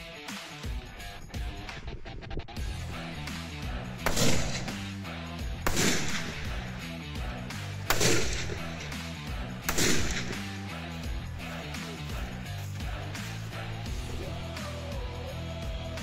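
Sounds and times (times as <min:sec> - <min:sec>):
rock music with steady beat: 0:00.0 - 0:16.0
rifle shots with echo: 0:04.0 - 0:06.8, 0:07.8 - 0:10.8.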